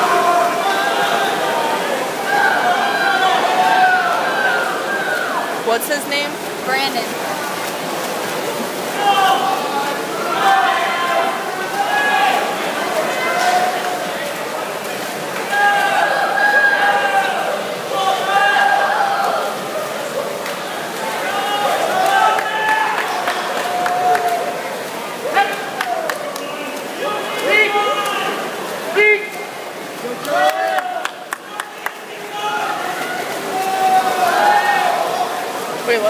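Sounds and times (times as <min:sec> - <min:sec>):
spectators yelling and cheering: 0:00.0 - 0:05.9, 0:08.8 - 0:14.3, 0:15.3 - 0:35.6
crowd din: 0:00.0 - 0:36.0.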